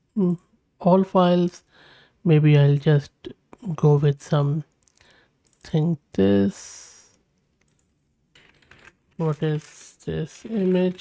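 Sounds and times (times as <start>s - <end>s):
faint keyboard keystrokes: 7.3s - 9.8s.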